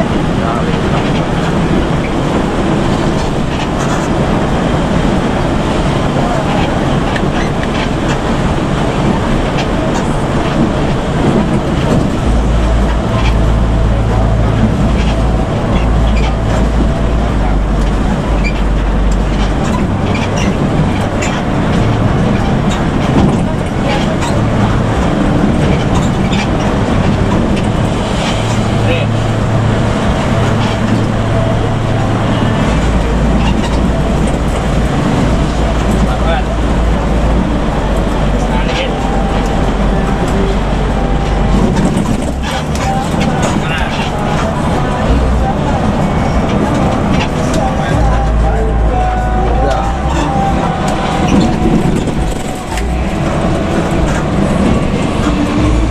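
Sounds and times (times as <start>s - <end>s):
bus engine drone: 0.0s - 55.9s
tyre and road noise: 0.0s - 55.9s.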